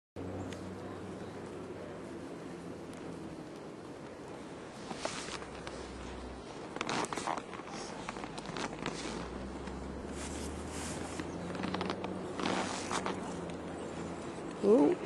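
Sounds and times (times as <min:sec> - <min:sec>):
skis scraping over snow: 0:00.8 - 0:14.8.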